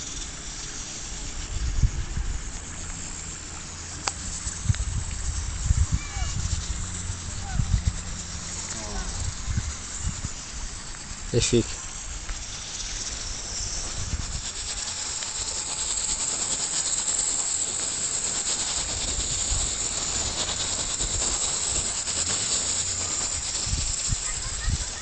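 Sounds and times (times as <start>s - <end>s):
stream running over stones: 0.0s - 25.0s
wind on microphone: 1.1s - 25.0s.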